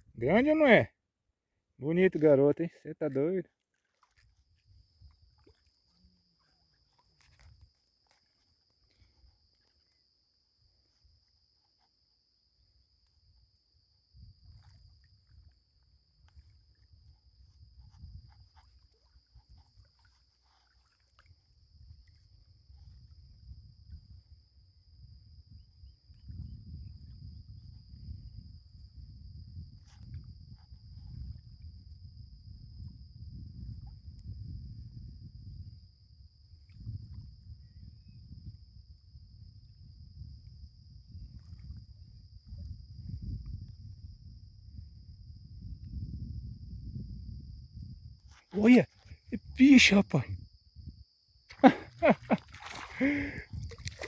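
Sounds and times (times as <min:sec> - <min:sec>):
insects droning: 0:00.0 - 0:54.0
wind rumbling on microphone: 0:04.2 - 0:07.8, 0:14.0 - 0:54.0.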